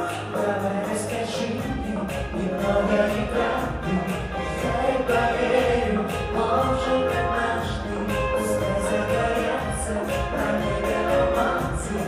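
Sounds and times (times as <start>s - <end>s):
band playing steady beat: 0.0s - 12.0s
woman singing: 0.0s - 12.0s.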